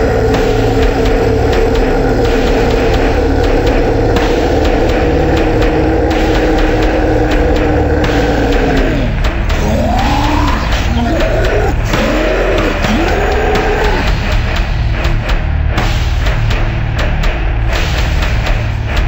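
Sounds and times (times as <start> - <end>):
slowed metal song: 0.0 - 19.0.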